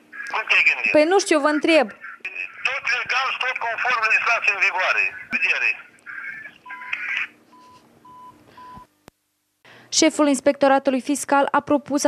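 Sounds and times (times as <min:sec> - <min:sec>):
telephone beeps: 0:06.6 - 0:08.9.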